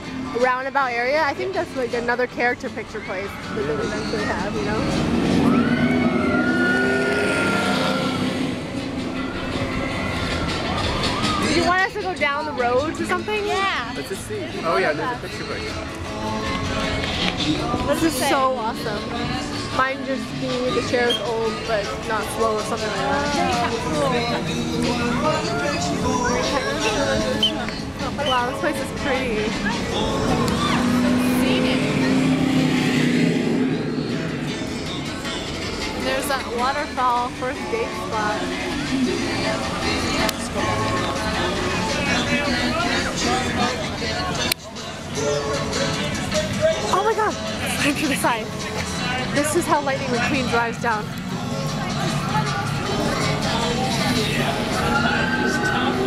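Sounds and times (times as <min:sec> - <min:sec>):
background music: 0:00.0 - 0:56.0
steady background noise: 0:00.0 - 0:56.0
race car engine passing by: 0:03.5 - 0:11.4, 0:29.5 - 0:35.7.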